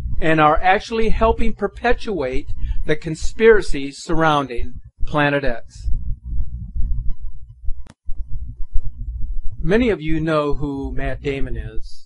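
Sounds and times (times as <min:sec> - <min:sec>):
deep throbbing pulses: 0:00.0 - 0:11.9.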